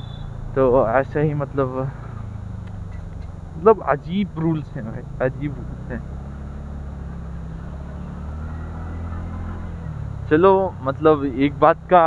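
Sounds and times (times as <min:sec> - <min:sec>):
road noise: 0:00.0 - 0:12.0
scooter engine humming: 0:00.0 - 0:12.0.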